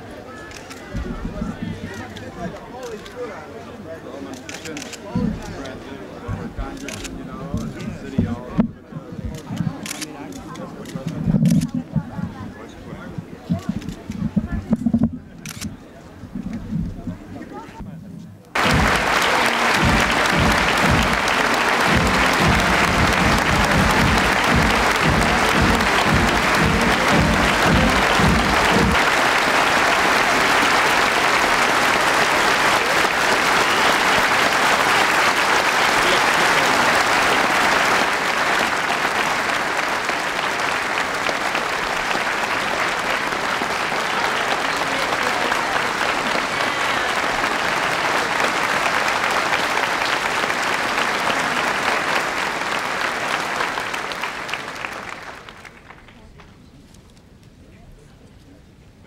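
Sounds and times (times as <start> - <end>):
crowd applauding: 4.4 - 8.6, 9.3 - 11.1, 18.6 - 56.4
low rhythmic pulse: 18.6 - 30.2.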